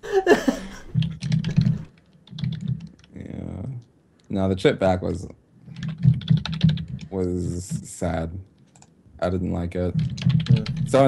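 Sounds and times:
computer keyboard typing: 1.0s - 3.3s, 5.7s - 7.8s, 8.6s - 8.9s, 9.9s - 11.0s.

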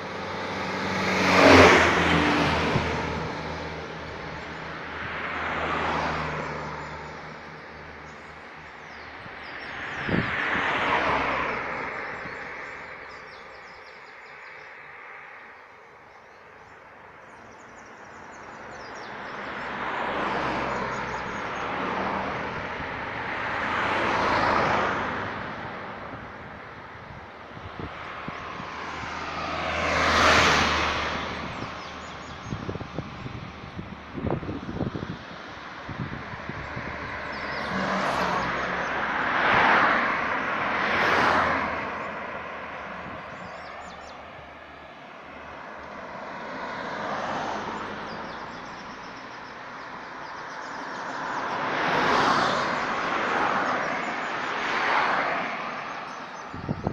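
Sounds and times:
cars passing: 0.0s - 56.9s.

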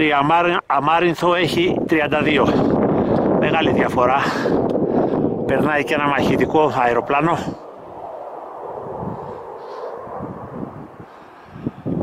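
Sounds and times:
fighter jet passing overhead: 2.6s - 12.0s.

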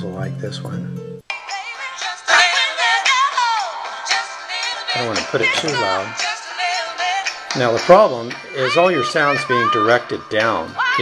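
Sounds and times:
song from phone speaker: 0.3s - 11.0s.

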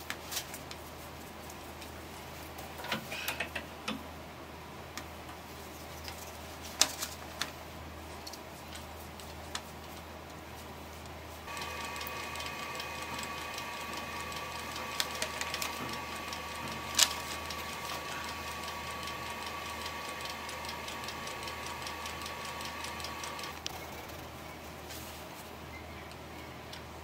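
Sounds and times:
wood lathe whining and ticking: 11.5s - 23.7s.

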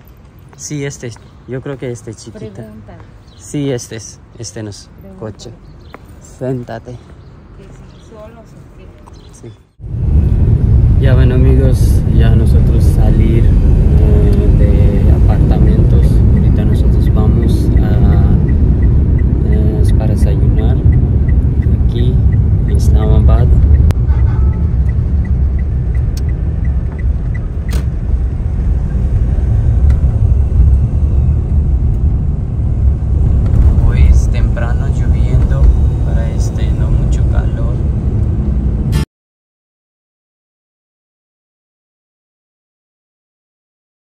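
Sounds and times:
voices: 0.6s - 9.7s, 11.0s - 23.7s, 33.5s - 37.9s
car cabin rumble: 13.9s - 38.8s.

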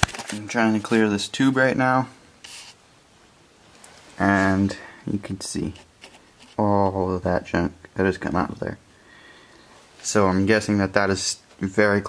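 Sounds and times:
brief rubbing scrape: 2.4s - 2.8s, 5.7s - 6.6s.

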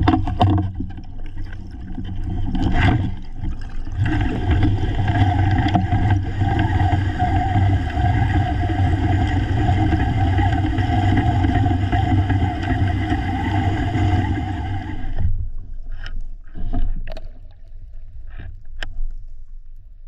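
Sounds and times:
underwater motorboat engine drone: 0.0s - 17.2s
underwater clicks and knocks: 0.0s - 19.3s.

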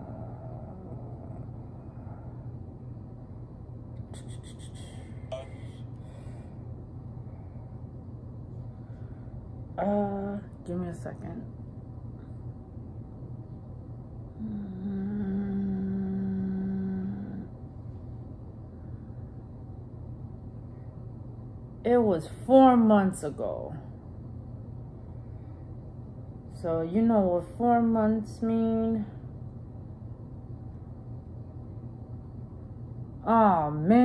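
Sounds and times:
woman humming: 0.0s - 2.5s, 4.0s - 5.9s, 14.3s - 17.6s
low background hum: 0.0s - 34.0s
low background rumble: 0.0s - 34.0s.

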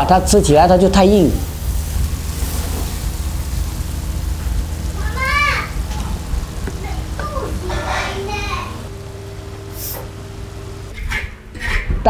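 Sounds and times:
low steady rumble: 0.0s - 11.5s.

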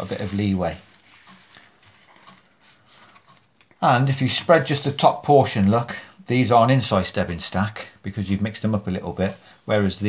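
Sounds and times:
playing cards rustling: 0.0s - 5.0s.

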